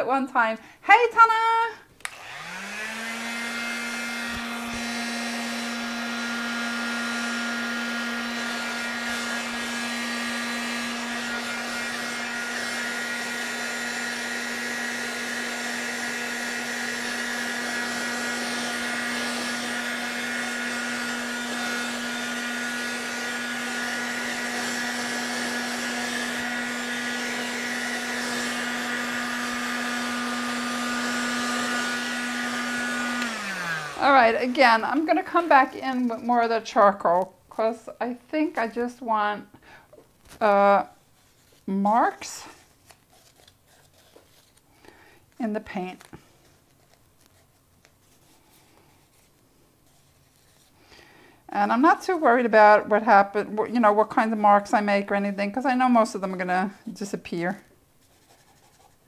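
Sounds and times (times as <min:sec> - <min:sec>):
electric dryer blowing air: 0:01.1 - 0:40.9, 0:51.5 - 0:57.6.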